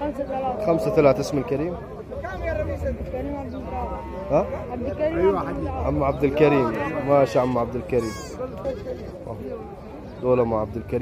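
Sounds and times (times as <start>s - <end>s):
faint voices murmuring: 0.0s - 11.0s.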